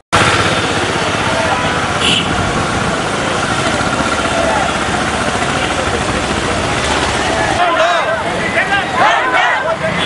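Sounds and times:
motorcycle engine running: 0.2s - 7.6s
crowd voices: 0.2s - 10.0s.

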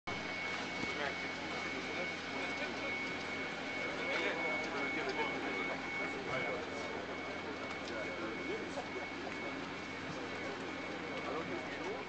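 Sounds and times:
high-pitched whine: 0.1s - 12.0s
steady mechanical hum: 0.1s - 12.0s.

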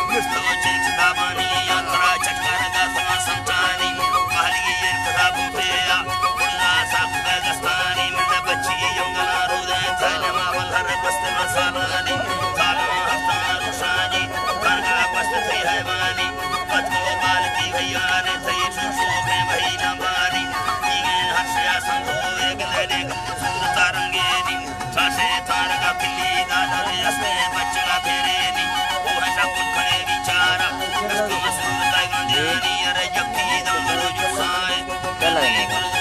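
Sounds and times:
bowed fiddle melody: 0.0s - 36.0s
wooden flutes: 0.0s - 36.0s.

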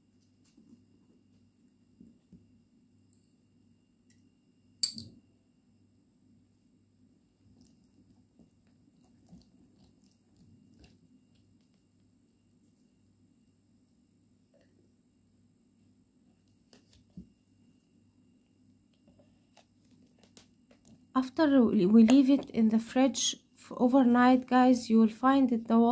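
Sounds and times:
faint low hum: 0.0s - 25.9s.

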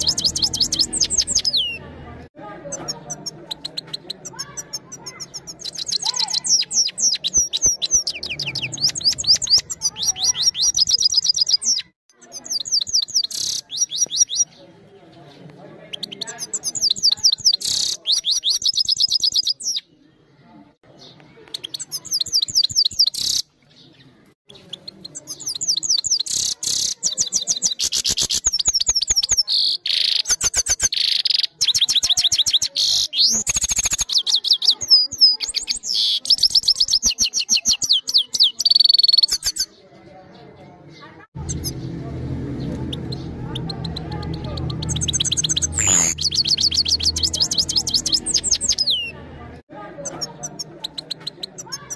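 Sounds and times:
finch singing twittering trills: 0.0s - 1.8s, 42.6s - 49.1s.

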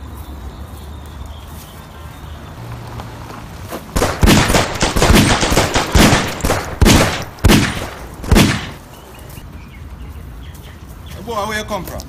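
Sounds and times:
gunshots: 4.0s - 8.8s.

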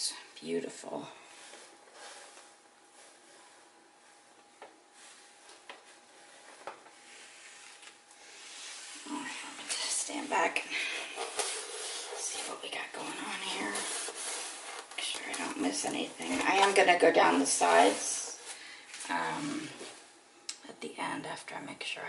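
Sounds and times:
low steady hum: 0.0s - 22.0s
woman talking quietly: 9.0s - 11.0s, 12.2s - 14.1s, 15.0s - 19.9s.

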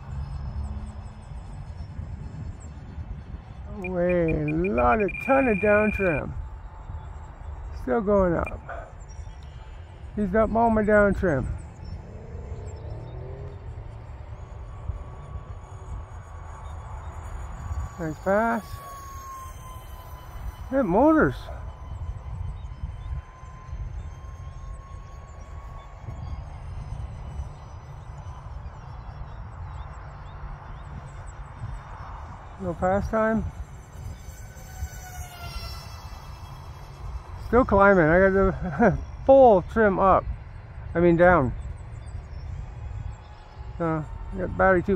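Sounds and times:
faint whine of electric fans: 0.0s - 44.9s
wind rumbling on microphone: 0.0s - 44.9s.

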